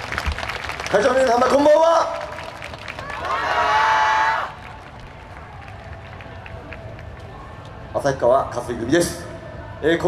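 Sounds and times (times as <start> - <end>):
low crowd rumble: 0.0 - 10.0
faint indistinct voices: 4.5 - 10.0.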